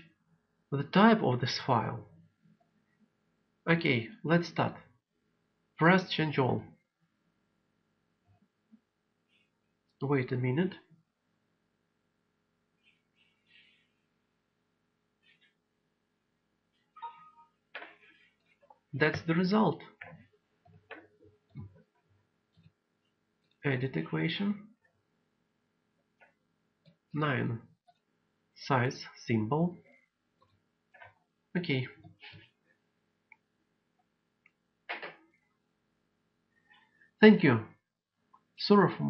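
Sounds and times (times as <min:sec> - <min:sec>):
two-tone computer chime: 0:17.0 - 0:17.6.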